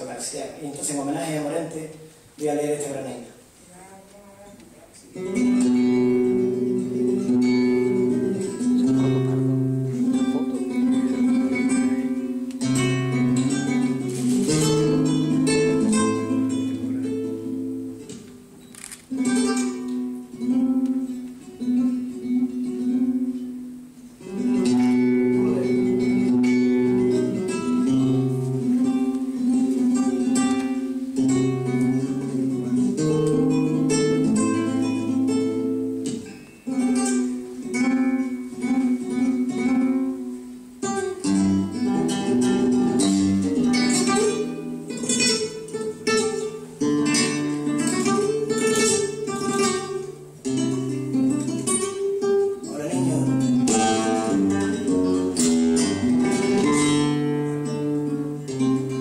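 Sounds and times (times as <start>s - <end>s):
flamenco acoustic guitar: 0.0s - 59.0s.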